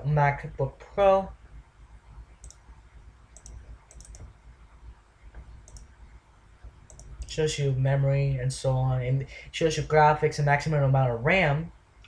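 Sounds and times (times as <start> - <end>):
low room hum: 0.0 - 12.0
mouse button clicking: 3.4 - 4.3, 6.9 - 7.3.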